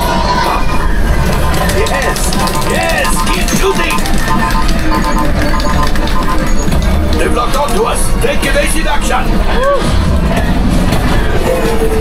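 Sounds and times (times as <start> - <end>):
soundtrack music: 0.0 - 12.0
short electronic beeps: 0.8 - 7.0.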